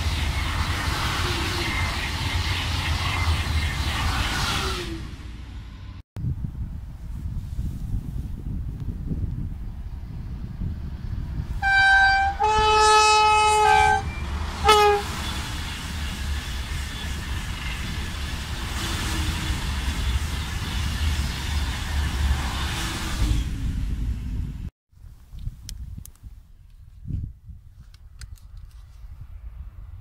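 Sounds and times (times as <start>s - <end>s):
train rushing past: 0.0s - 6.0s, 9.8s - 24.7s
train horn blasts: 11.6s - 15.4s.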